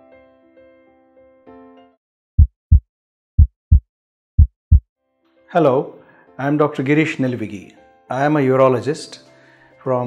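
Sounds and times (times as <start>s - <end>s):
low heartbeat thumps: 2.4s - 2.8s, 3.4s - 3.8s, 4.4s - 4.8s.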